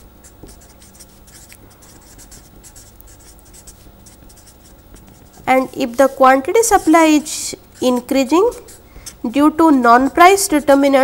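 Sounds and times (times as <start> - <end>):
marker pen scratching on paper: 0.0 - 11.0.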